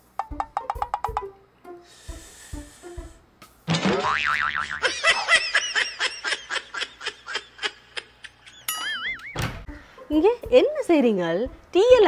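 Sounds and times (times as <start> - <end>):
wobbling boing: 3.9 - 4.8.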